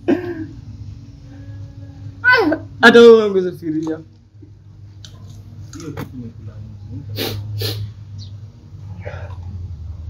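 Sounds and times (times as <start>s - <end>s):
steady low hum: 0.0s - 10.0s
man blowing hissing breaths: 7.1s - 8.0s.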